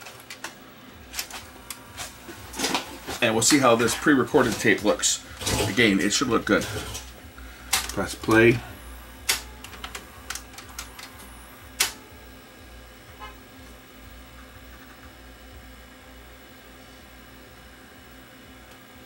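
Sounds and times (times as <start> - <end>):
tape mechanism clicking: 0.0 - 8.6, 9.2 - 12.0
tape deck humming: 0.0 - 19.0.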